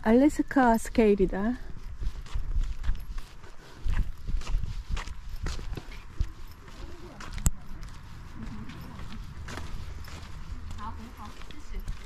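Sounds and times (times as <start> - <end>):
footsteps on concrete: 0.9 - 12.0.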